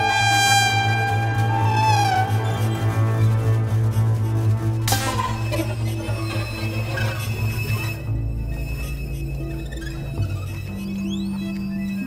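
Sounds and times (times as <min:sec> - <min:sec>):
high tone bending and sliding: 0:00.0 - 0:12.0
pulsing low drone: 0:00.0 - 0:12.0.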